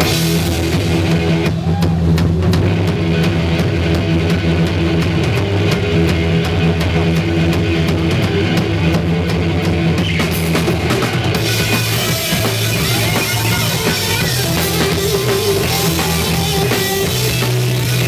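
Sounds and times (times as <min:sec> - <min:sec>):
distorted electric guitar: 0:00.0 - 0:18.0
drum kit with cymbals and snare: 0:00.0 - 0:18.0
electric bass: 0:00.0 - 0:18.0.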